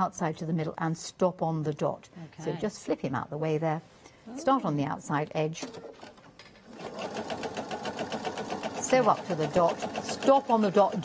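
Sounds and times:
sewing machine stitching: 5.6 - 11.0.

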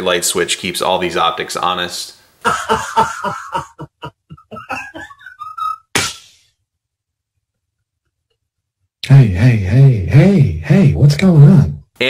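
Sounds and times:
man laughing hard: 2.4 - 6.4
man wailing: 2.5 - 5.0.

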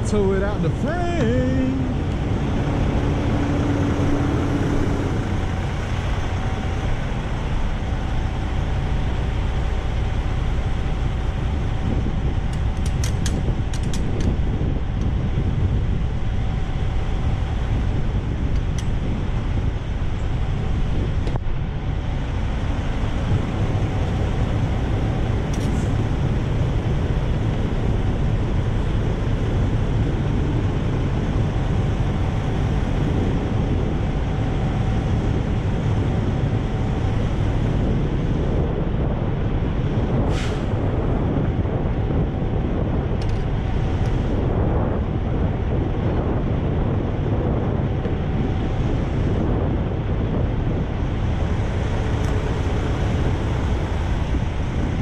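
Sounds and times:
diesel truck engine idling: 0.0 - 42.8, 47.8 - 55.0.

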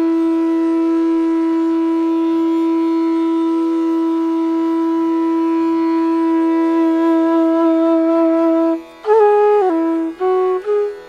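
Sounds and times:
bamboo flute long note: 0.0 - 11.0.

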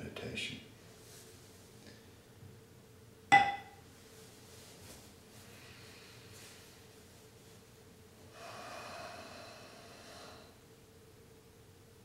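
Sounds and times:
person breathing through nose: 8.3 - 10.6.

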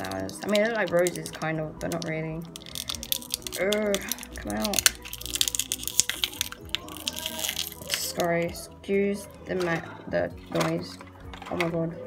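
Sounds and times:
plastic packaging crinkling: 0.0 - 8.4.

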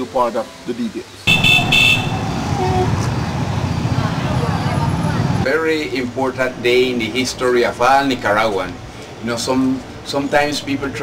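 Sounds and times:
horn tooting: 1.3 - 3.4
motorcycle engines rumbling: 1.3 - 11.0
voices: 1.3 - 11.0.

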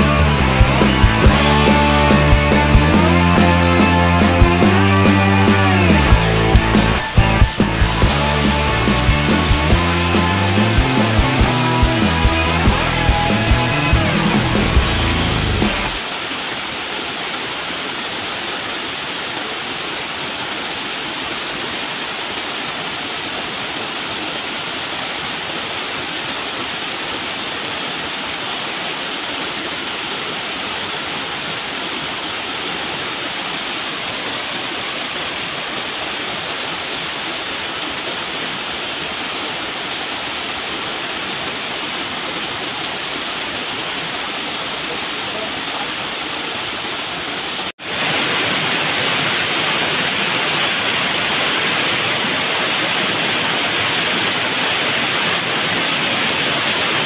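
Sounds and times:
river rapids rushing: 0.0 - 57.0.

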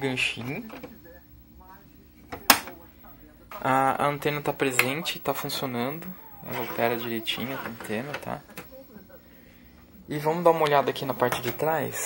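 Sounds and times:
plastic cover click: 2.3 - 2.8.

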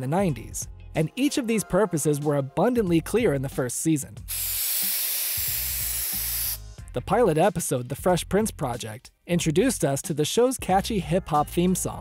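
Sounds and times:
spray-paint can hissing: 4.3 - 6.7.

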